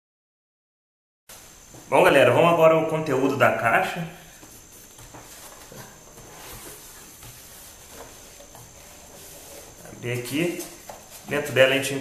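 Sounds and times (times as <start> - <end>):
steady hiss: 1.3 - 12.0
cardboard box rustling and scraping: 4.6 - 11.4.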